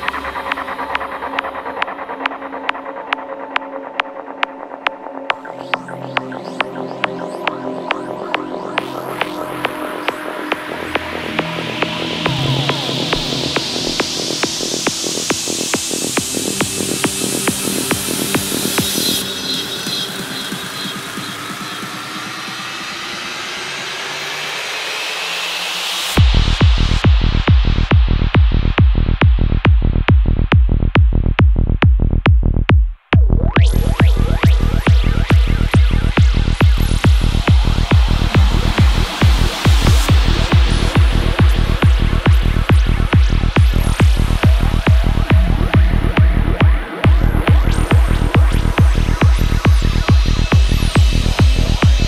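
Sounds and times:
electronic kick drum: 0.0 - 19.2, 26.2 - 52.0
psytrance music: 0.0 - 52.0
swept-noise riser: 8.8 - 16.2.

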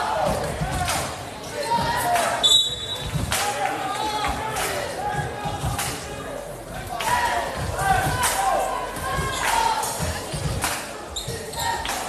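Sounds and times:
crowd voices: 0.0 - 12.0
sneaker squeaks: 1.4 - 3.2, 11.1 - 11.9.

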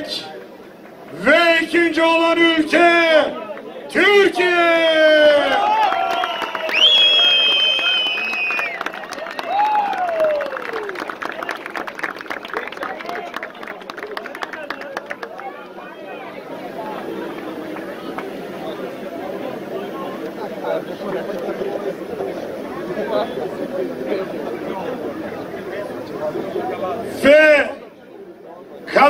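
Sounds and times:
crowd chatter: 0.0 - 29.0
audience cheering: 4.4 - 18.2
fast applause: 5.0 - 18.9.

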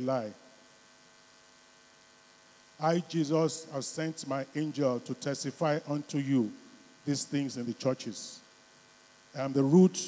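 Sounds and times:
man speaking into a microphone: 0.0 - 0.4, 2.8 - 8.5, 9.3 - 10.0
faint electrical mains hum: 0.0 - 10.0.

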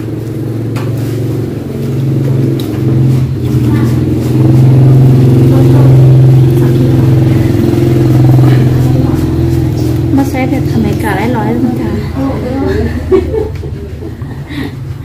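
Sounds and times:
vehicle engine running: 0.0 - 15.0.

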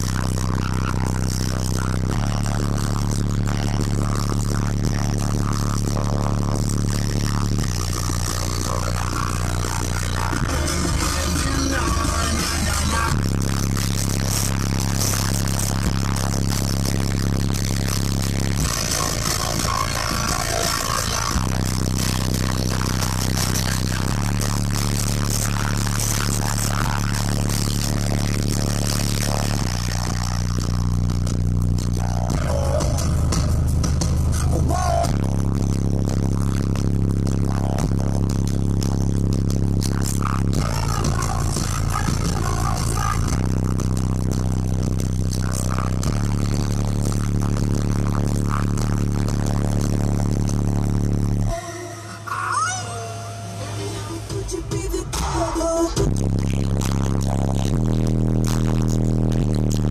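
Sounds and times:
subwoofers playing deep bass music: 0.0 - 59.9.

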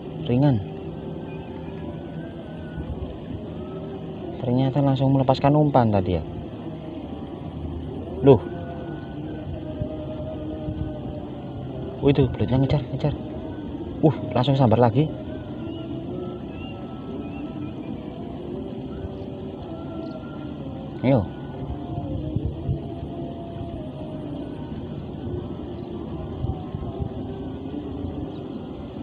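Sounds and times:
distant engine hum: 0.0 - 29.0.

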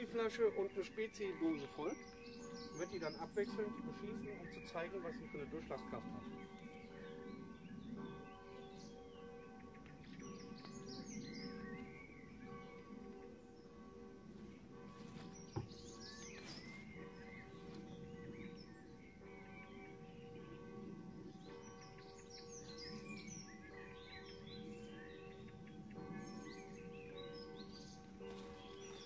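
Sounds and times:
songbirds chirping and singing: 0.0 - 29.0.

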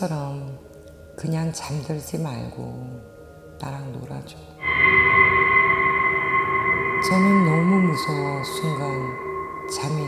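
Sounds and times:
eerie high ringing drone: 2.1 - 10.0
low rumble: 4.6 - 10.0.

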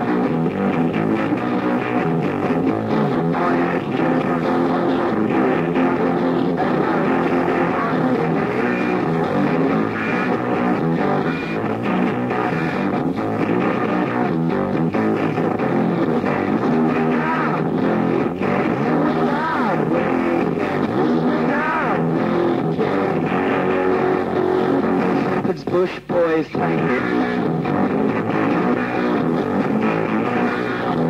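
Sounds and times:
muffled punk rock band: 0.0 - 31.0.

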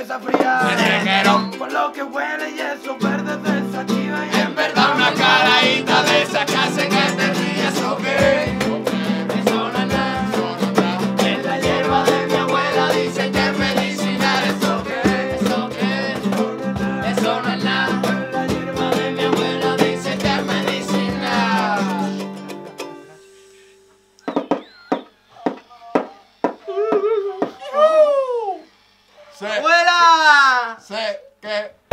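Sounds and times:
group singing: 0.0 - 23.2
ukulele: 0.1 - 24.3
hand drums: 0.3 - 1.6, 3.5 - 27.6
nylon-string guitar strummed: 0.4 - 25.0.

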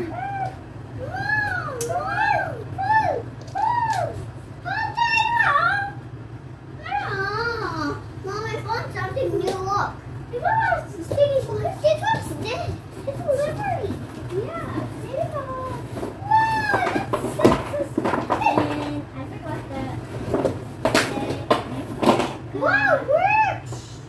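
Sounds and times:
children chattering and calling out: 0.0 - 20.1, 21.1 - 24.0
steady low hum: 0.0 - 24.0.

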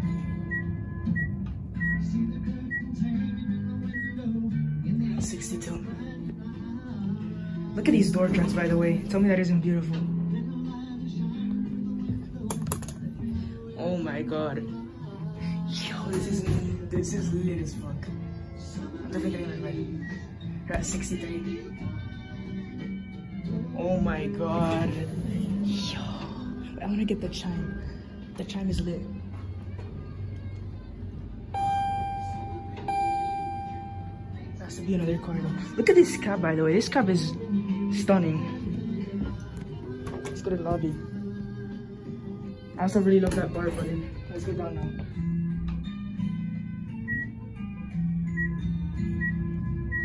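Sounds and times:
background music low tones: 0.0 - 50.0
elevator arrival chime: 31.5 - 34.6.

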